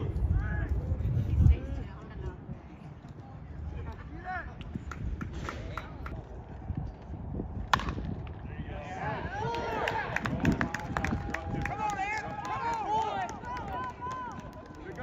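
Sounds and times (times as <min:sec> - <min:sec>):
bat cracking against ball: 0:07.7 - 0:08.4
spectators shouting and cheering: 0:08.5 - 0:15.0.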